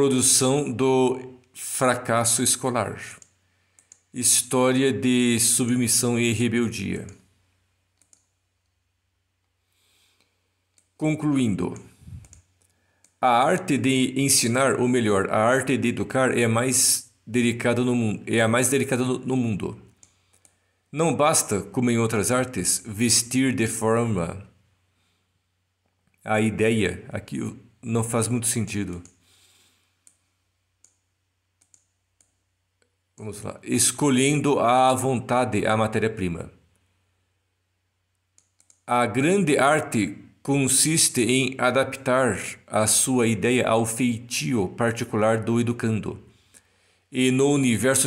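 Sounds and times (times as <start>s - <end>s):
faint computer mouse clicks: 3.2s - 4.1s, 7.9s - 8.8s, 11.7s - 13.2s, 19.9s - 20.6s, 30.0s - 32.4s, 38.3s - 38.9s.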